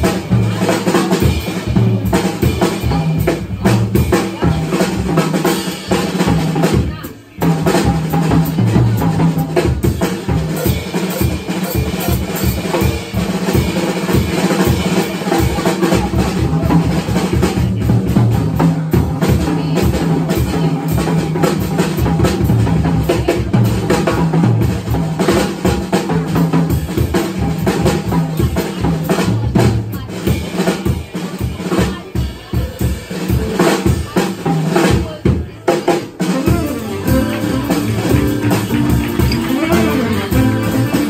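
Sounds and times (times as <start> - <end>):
jazz drum solo: 0.0 - 41.0.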